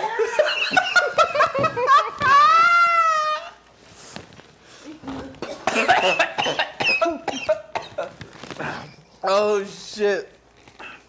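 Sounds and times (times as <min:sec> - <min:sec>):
laughter: 0:00.0 - 0:02.6
man coughing into plastic bag: 0:05.2 - 0:09.0, 0:10.8 - 0:11.0.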